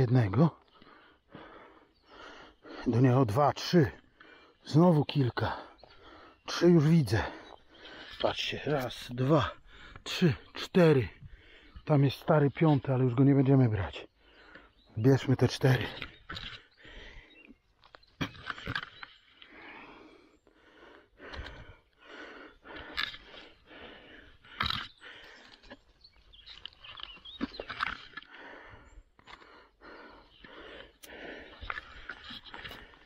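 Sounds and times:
person breathing hard: 0.6 - 2.9, 5.4 - 6.5, 7.2 - 8.2, 9.5 - 10.5, 11.1 - 11.9, 16.5 - 17.5, 19.4 - 25.8, 28.1 - 33.0.

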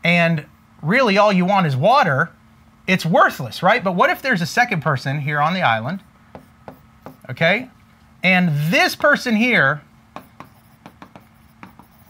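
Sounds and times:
pen ticking and scratching on glass: 10.2 - 12.0.

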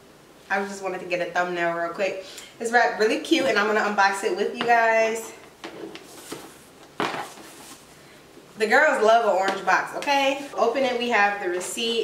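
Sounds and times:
ribbon handling rustle: 5.6 - 7.9.

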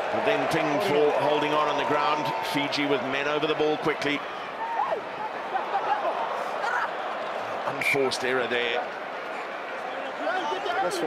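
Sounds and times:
stadium crowd shouting: 0.0 - 11.0.

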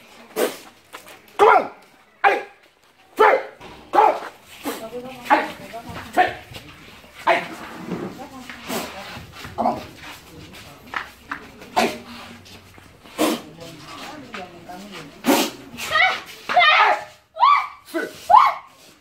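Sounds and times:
sharp bark-like cries: 3.2 - 4.3.

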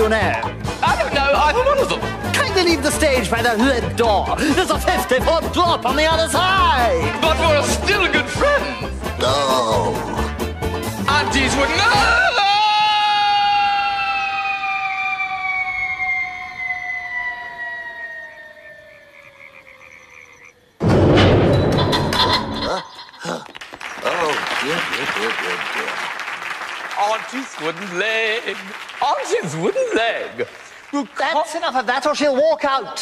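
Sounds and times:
jaunty music-hall song: 0.0 - 12.4
cartoon falling whistle: 13.5 - 20.1
loud heavy crash: 20.8 - 22.5.

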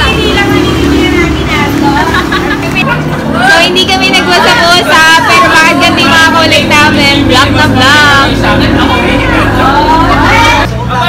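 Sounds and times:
steady low hum: 0.0 - 10.7
women laughing and calling out: 1.4 - 7.7.

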